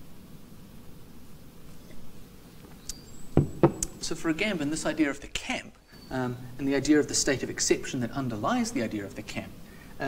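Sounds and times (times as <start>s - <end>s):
low steady hiss: 0.0s - 10.0s
sharp knocks: 3.4s - 4.0s.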